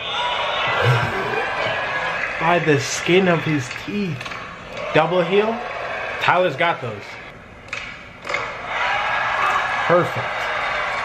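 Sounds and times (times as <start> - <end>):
crowd noise: 0.0 - 3.5.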